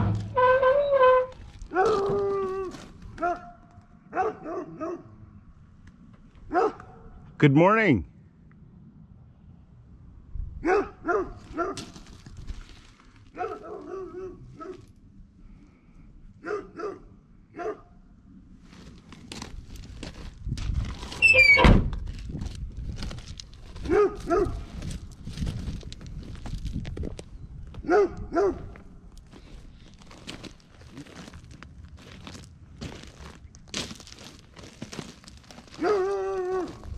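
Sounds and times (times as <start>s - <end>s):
heavy thunk: 0.0s - 0.4s
creak rising in pitch: 0.0s - 1.4s
dog barking: 3.2s - 5.2s, 6.5s - 7.1s, 10.6s - 11.9s, 13.4s - 14.8s, 16.4s - 17.9s, 23.9s - 24.7s, 27.8s - 28.8s, 35.8s - 36.7s.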